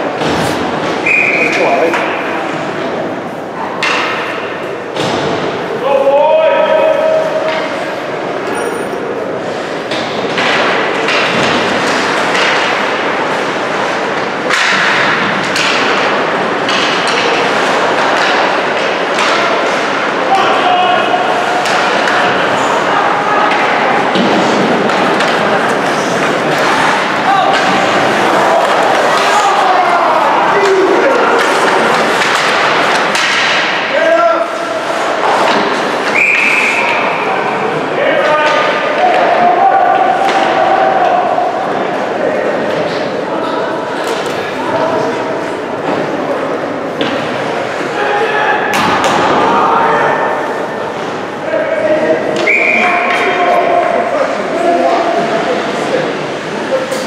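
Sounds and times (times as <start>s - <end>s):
hockey sticks clacking: 0.0s - 5.6s, 6.6s - 57.0s
crowd din: 0.0s - 57.0s
skates scraping ice: 6.7s - 37.9s
people shouting: 19.8s - 33.3s, 38.2s - 41.8s.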